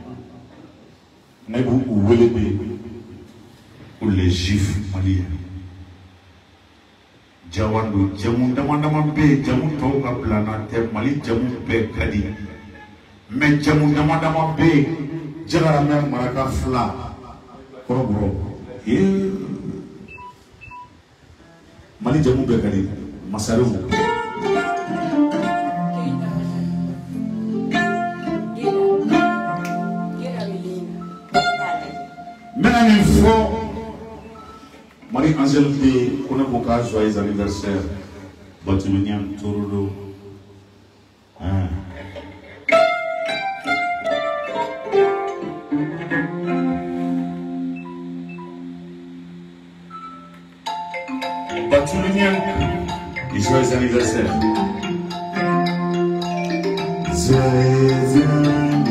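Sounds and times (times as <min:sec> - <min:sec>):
harp notes plucked: 0:23.9 - 0:34.4, 0:42.7 - 0:58.9.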